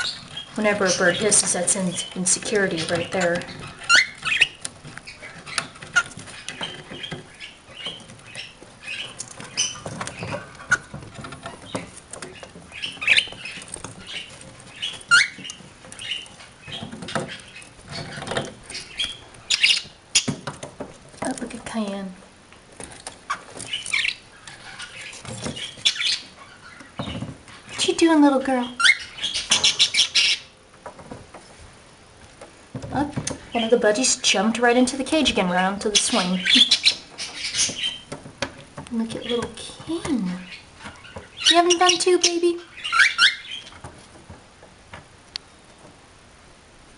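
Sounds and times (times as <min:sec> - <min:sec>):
claws and beaks clicking on antlers: 0:00.0 - 0:27.9
birds chirping and squeaking: 0:00.0 - 0:46.0.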